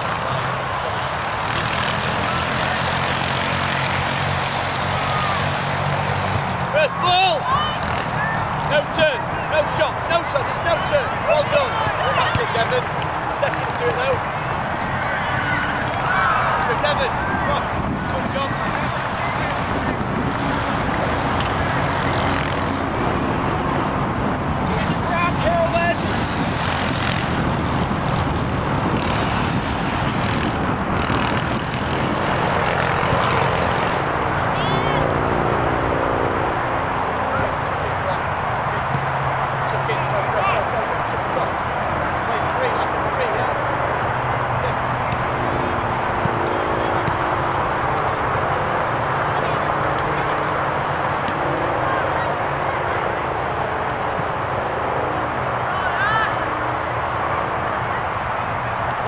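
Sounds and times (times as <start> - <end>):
distant voices: 0.0 - 59.0.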